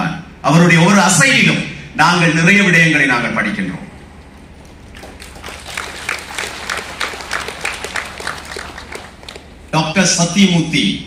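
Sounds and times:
audience applauding: 4.1 - 9.7.

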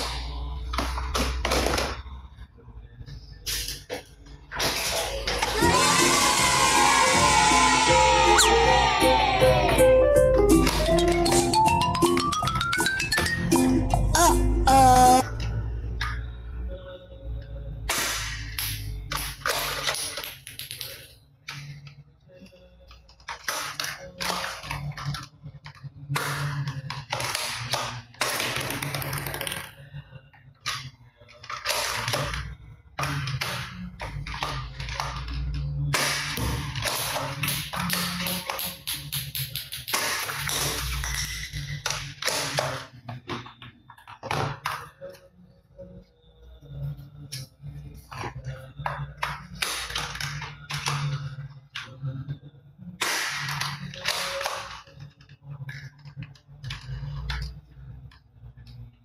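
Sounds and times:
background music: 5.4 - 18.8.

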